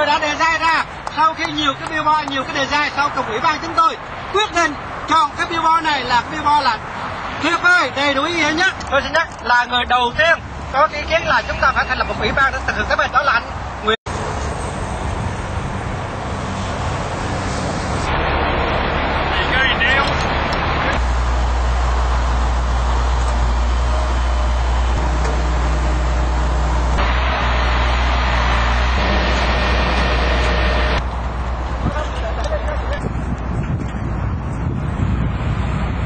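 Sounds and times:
freeway traffic noise: 0:00.0 - 0:36.0.

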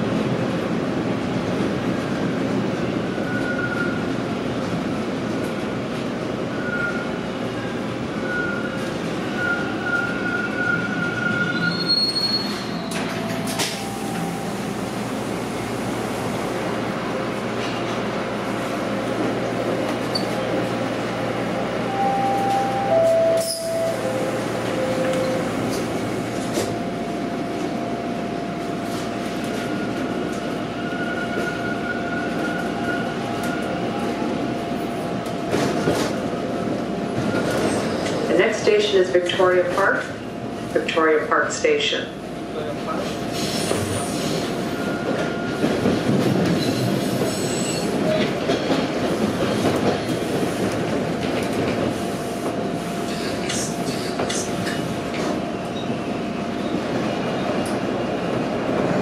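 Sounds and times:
subway wheels rumbling: 0:00.0 - 0:59.0.

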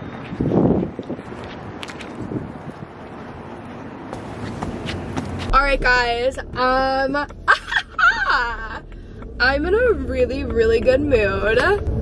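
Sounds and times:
wind buffeting microphone: 0:00.0 - 0:03.5.

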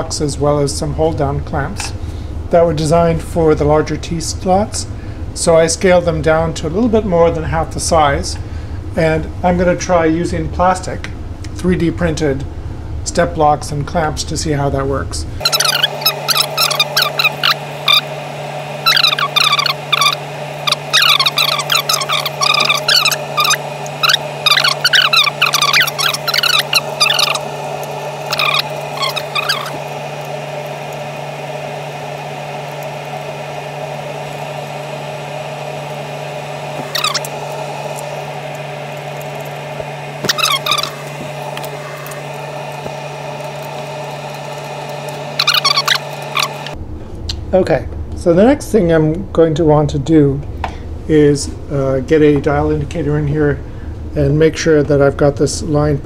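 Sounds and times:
steady hum: 0:00.0 - 0:56.0.

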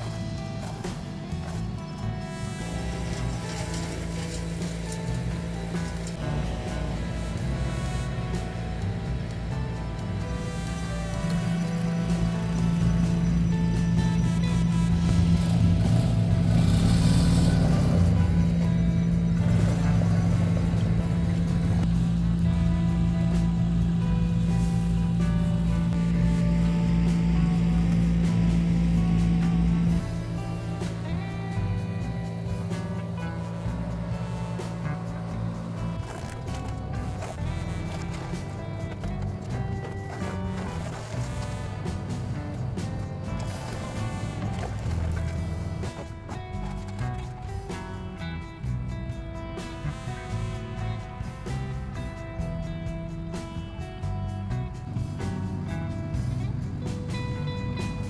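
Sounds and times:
background music: 0:00.0 - 0:58.0
wood chipper engine drone: 0:00.0 - 0:58.0.

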